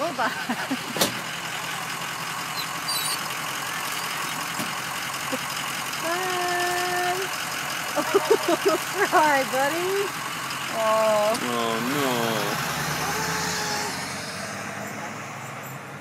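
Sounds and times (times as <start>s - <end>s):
bus engine idling: 0.0s - 16.0s
laughter: 0.3s - 1.0s, 7.9s - 9.2s.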